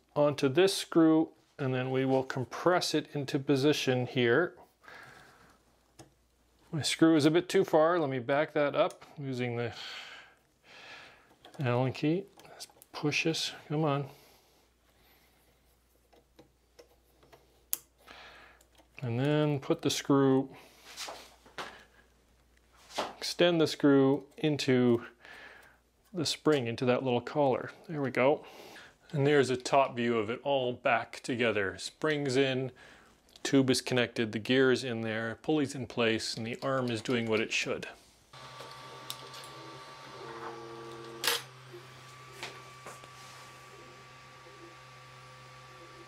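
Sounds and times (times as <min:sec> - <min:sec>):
printer fans humming: 0:38.4 - 0:46.0
stepper motors whining: 0:38.4 - 0:46.0.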